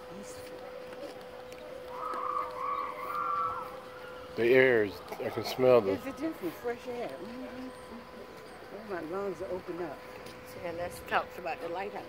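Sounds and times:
bird calling: 1.5s - 5.4s.

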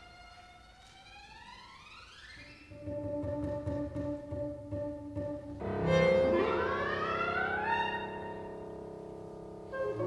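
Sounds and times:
chamber ensemble sustained tones: 2.7s - 10.0s.

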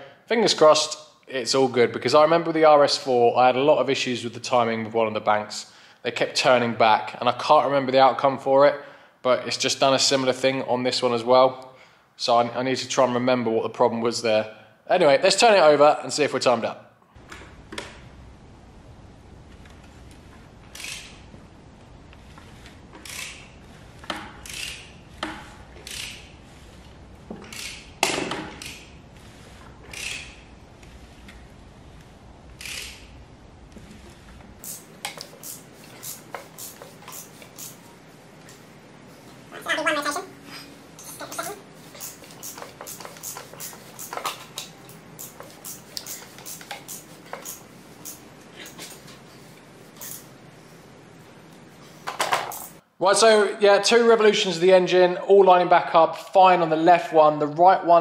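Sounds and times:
ratchet wrench clicking: 20.7s - 21.2s, 23.0s - 23.5s, 24.4s - 24.9s, 25.8s - 26.3s, 27.5s - 27.9s, 29.9s - 30.4s, 32.6s - 33.1s, 34.6s - 37.8s, 42.0s - 48.2s, 50.0s - 50.3s.

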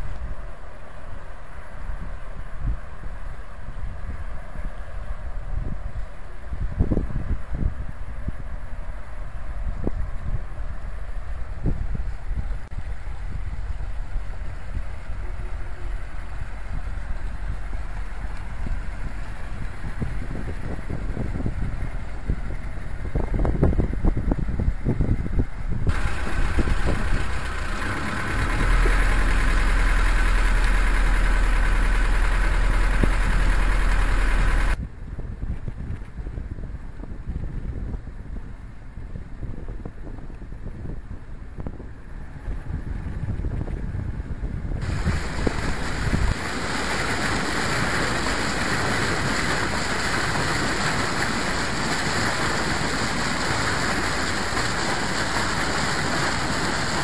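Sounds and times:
diesel boat engine running: 0.0s - 57.0s
water rushing along hull: 0.0s - 57.0s
wind rumble on microphone: 0.0s - 57.0s.

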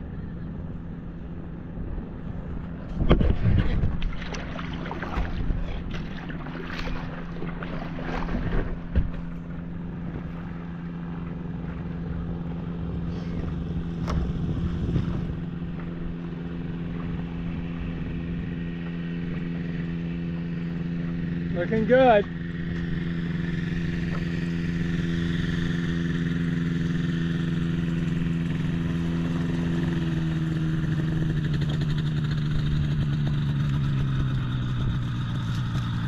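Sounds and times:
seaplane propeller engine running: 0.0s - 36.0s
wind buffeting on microphone: 2.3s - 9.3s, 13.3s - 16.2s.

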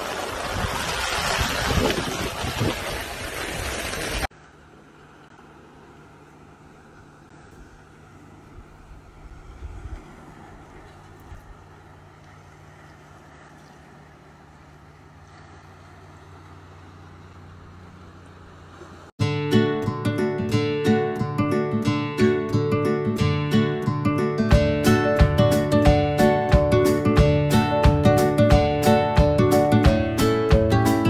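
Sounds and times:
low motor hum: 4.3s - 19.1s.

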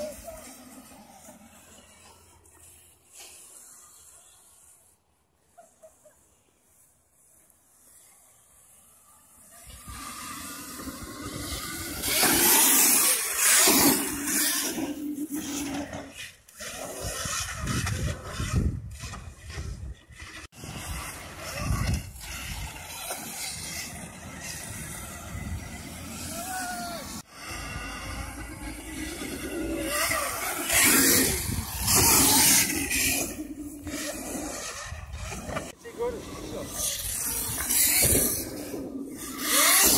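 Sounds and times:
people talking: 0.0s - 1.4s, 35.8s - 38.4s
dirt bike riding past: 7.9s - 39.9s.

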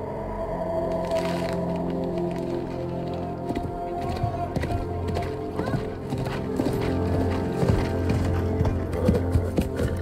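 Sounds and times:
film score low notes: 0.0s - 10.0s
horse hooves clip-clopping: 2.6s - 10.0s.

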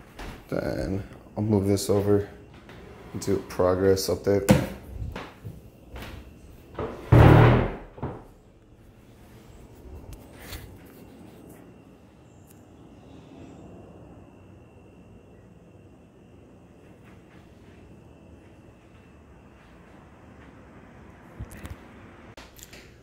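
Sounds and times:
faint steady high whine: 0.0s - 23.0s.

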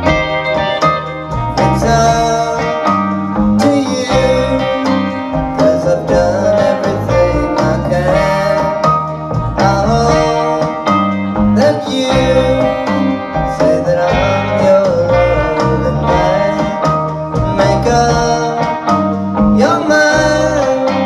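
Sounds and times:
band playing pop song: 0.0s - 21.0s.

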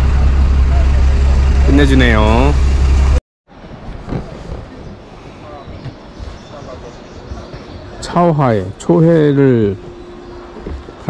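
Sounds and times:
bus engine idling: 0.0s - 3.2s
faint outdoor background sounds: 3.5s - 11.0s.

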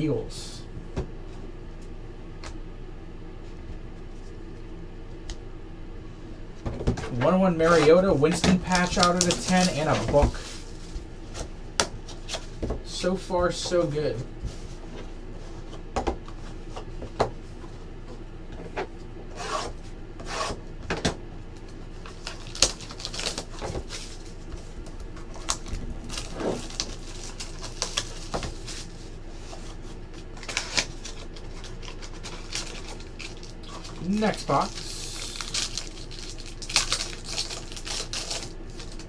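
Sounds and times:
cardboard rubbing and scraping: 19.2s - 20.6s.

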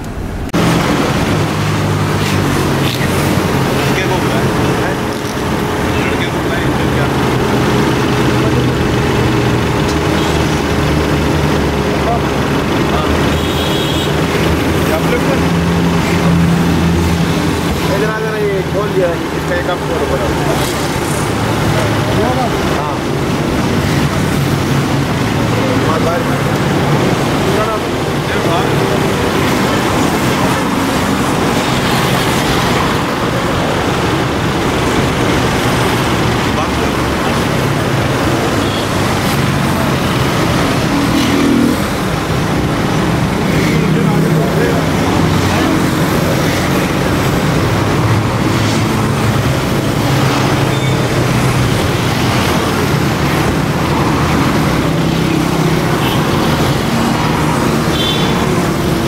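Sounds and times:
indistinct voices: 0.0s - 59.0s
road traffic noise: 0.0s - 59.0s.

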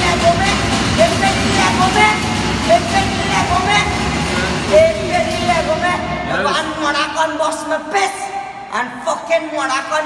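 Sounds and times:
noisy background: 0.0s - 10.0s.

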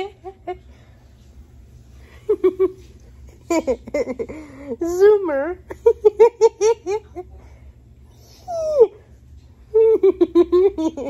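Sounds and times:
woman laughing: 0.0s - 0.7s, 2.3s - 4.8s, 5.7s - 7.3s, 9.7s - 11.0s
dog whining: 8.2s - 9.1s.

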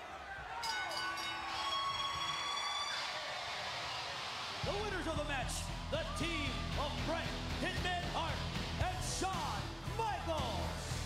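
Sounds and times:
ring bell ringing: 0.6s - 2.4s
rock music with heavy bass beat: 4.7s - 11.0s.

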